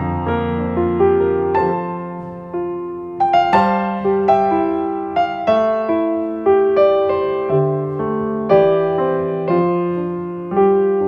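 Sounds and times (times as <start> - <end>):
slow piano music: 0.0 - 11.0.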